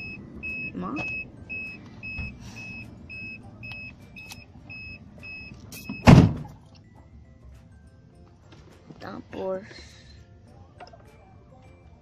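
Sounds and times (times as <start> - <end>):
car warning chime beeping: 0.0 - 6.2
car door shutting: 5.8 - 6.6.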